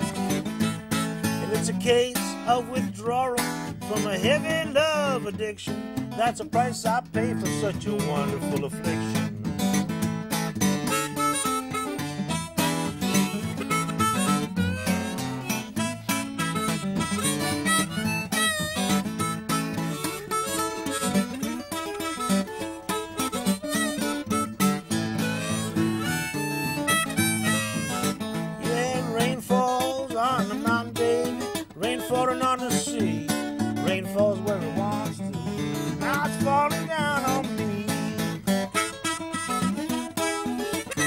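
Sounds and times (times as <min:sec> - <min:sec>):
fingerpicked acoustic guitar: 0:00.0 - 0:41.0
harmonica: 0:00.0 - 0:41.0.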